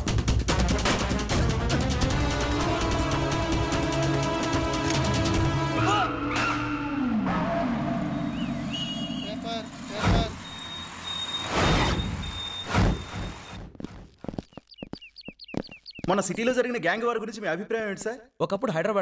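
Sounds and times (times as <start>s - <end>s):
film music: 0.0s - 11.0s
short chirping sounds: 10.4s - 13.6s.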